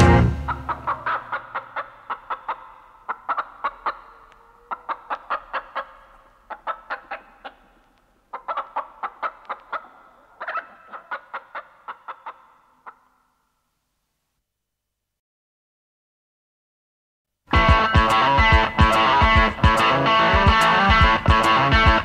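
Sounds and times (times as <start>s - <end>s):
chicken clucking: 0.0s - 13.2s.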